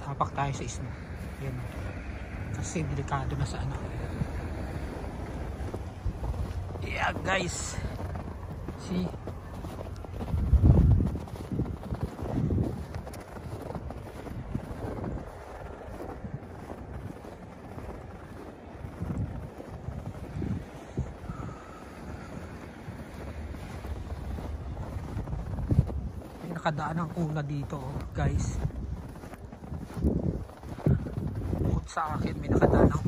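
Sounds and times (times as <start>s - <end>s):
footsteps in deep snow: 0.0s - 33.0s
wind buffeting microphone: 0.0s - 33.0s.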